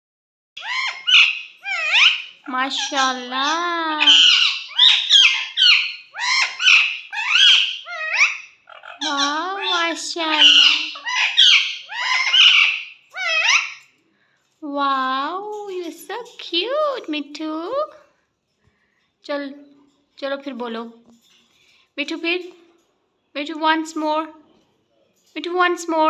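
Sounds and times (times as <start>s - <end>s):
parakeet high-pitched calls: 0.6s - 13.9s.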